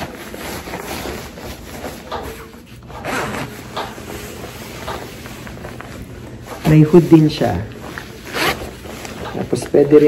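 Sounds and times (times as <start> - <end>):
rain jacket fabric swishing: 0.0 - 10.0.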